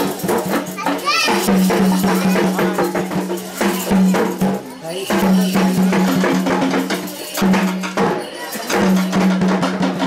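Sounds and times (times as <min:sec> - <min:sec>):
crowd and children's voices: 0:00.0 - 0:10.0
fast dense percussion: 0:00.0 - 0:10.0.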